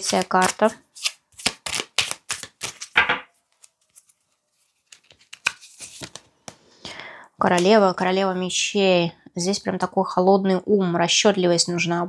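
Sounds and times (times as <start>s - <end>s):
cards being shuffled: 0.0s - 6.6s.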